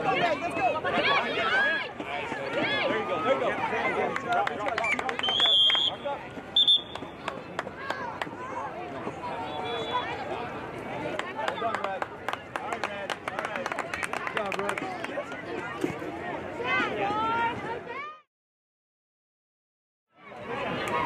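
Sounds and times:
spectators chattering: 0.0 - 18.2, 20.1 - 21.0
referee's whistle blowing: 4.9 - 6.0, 6.6 - 7.1, 9.4 - 10.1.

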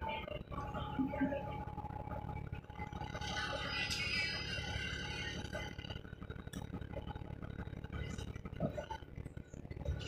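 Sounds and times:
high whine: 0.0 - 10.0.

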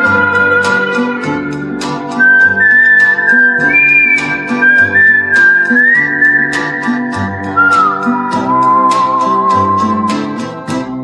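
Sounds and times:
steady percussion beat: 0.0 - 10.9
plucked guitar and bass: 0.0 - 11.0
whistled melody: 2.1 - 10.8.

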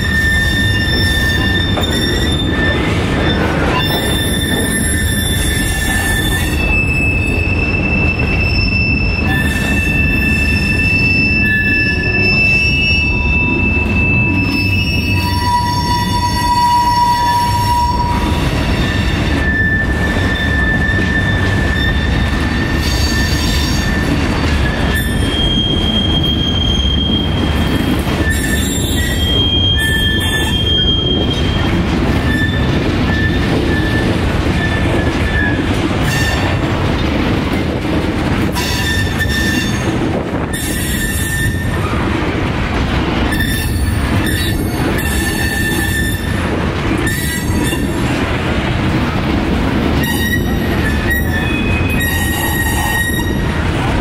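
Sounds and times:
high-pitched wheel squeals: 0.0 - 36.5, 38.6 - 39.9, 40.5 - 42.0, 43.3 - 46.4, 50.0 - 53.5
freight train wheels rumbling: 0.0 - 54.0.

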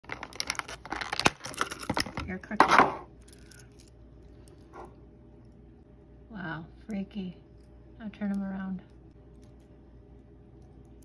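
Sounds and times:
plastic bag crinkling: 0.0 - 2.2.

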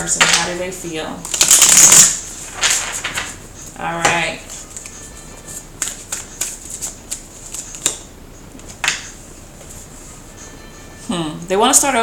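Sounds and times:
cards being shuffled: 1.2 - 3.8, 4.4 - 9.1.

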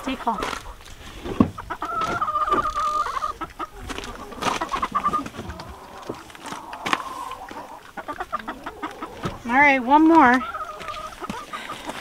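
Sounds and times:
hen calling and clucking: 0.0 - 12.0
rustling and knocks from handling: 1.2 - 2.6.

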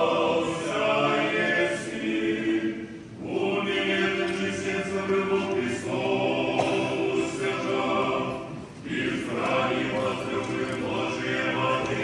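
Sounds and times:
choir chanting unaccompanied: 0.0 - 12.0.

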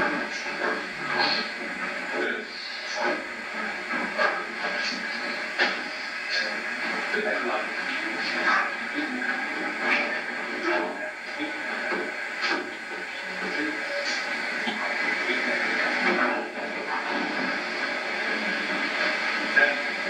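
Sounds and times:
muffled voices: 0.0 - 20.0
tape hiss: 0.0 - 20.0.

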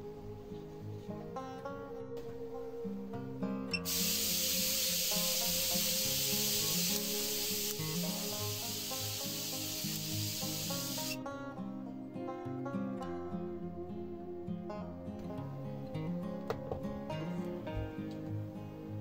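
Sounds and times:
background music: 0.0 - 19.0
corona discharge hissing: 3.8 - 11.2.

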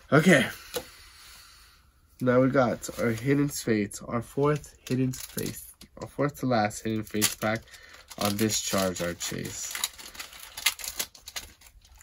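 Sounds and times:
foil wrapper crinkling: 4.8 - 5.8, 6.8 - 12.0.

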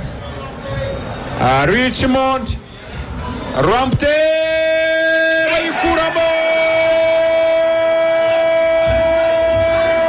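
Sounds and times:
commentator's long excited shout: 4.2 - 10.0.

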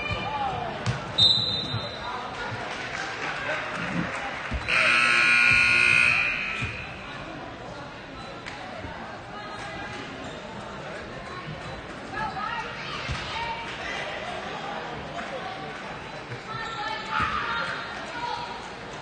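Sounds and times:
scoreboard horn: 4.7 - 7.0.

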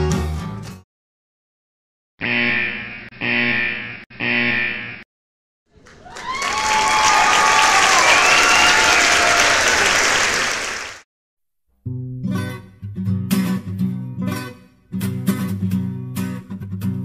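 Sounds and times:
crowd applause and cheering: 5.7 - 11.0
crowd shouting: 6.0 - 11.0
whistles: 6.1 - 11.0.

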